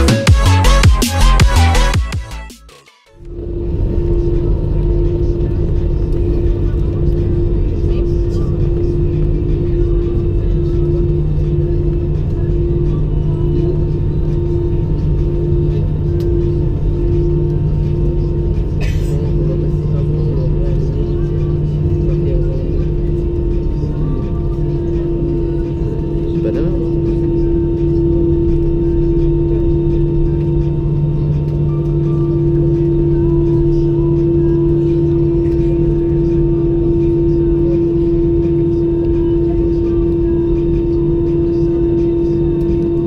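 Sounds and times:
intro music: 0:00.0 - 0:07.9, 0:08.6 - 0:43.0
airliner cabin engine hum: 0:03.2 - 0:43.0.

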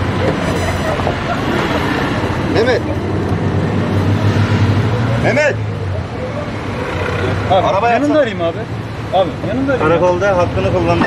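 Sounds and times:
street traffic: 0:00.0 - 0:11.0
vehicle engine humming: 0:00.0 - 0:11.0.

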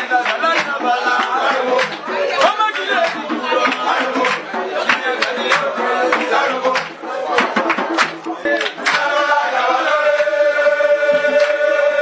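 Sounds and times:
voices singing and calling: 0:00.0 - 0:12.0
sharp percussive hits: 0:00.1 - 0:09.3.

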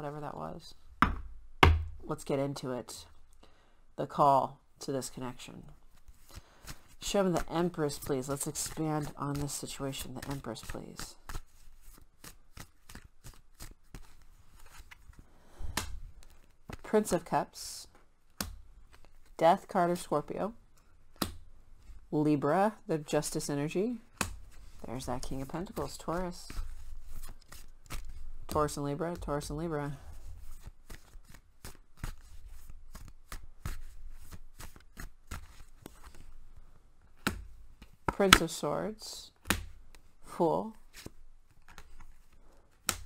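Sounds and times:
cards being shuffled: 0:05.8 - 0:17.3, 0:18.0 - 0:19.7, 0:24.1 - 0:38.6, 0:40.7 - 0:43.0.

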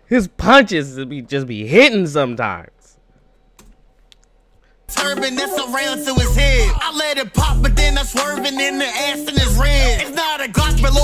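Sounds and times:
rap music: 0:04.9 - 0:11.0.

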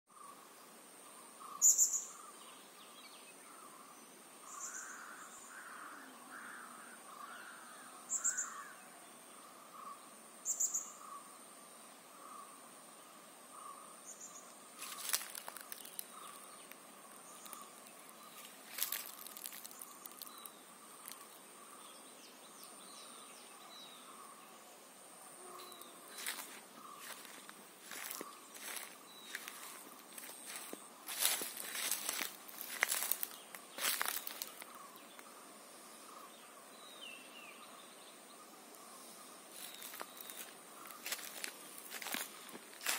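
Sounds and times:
birds calling: 0:13.5 - 0:24.4, 0:25.4 - 0:42.9
footsteps crunching on dry leaves: 0:14.8 - 0:21.2, 0:25.8 - 0:34.9, 0:39.5 - 0:42.9.

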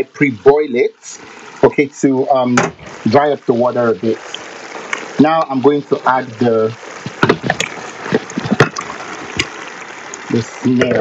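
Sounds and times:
sauce bubbling: 0:00.0 - 0:11.0.

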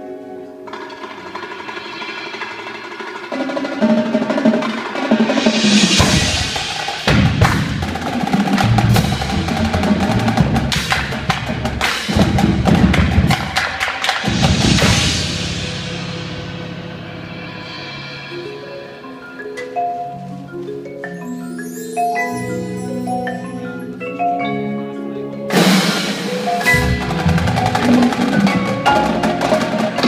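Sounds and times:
marimbas and vibraphones: 0:00.0 - 0:30.0
marching drums: 0:00.7 - 0:18.2, 0:25.5 - 0:30.0
cymbal crashes: 0:04.8 - 0:07.9, 0:14.2 - 0:18.5.

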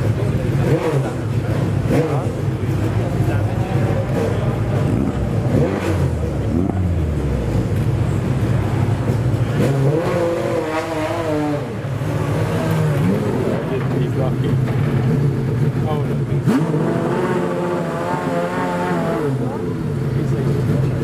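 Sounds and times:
car engine idling: 0:00.0 - 0:21.0
engine revving: 0:00.0 - 0:21.0.

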